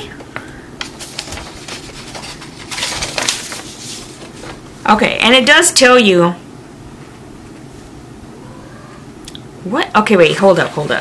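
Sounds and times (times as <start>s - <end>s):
paper rustling: 0.8s - 4.6s.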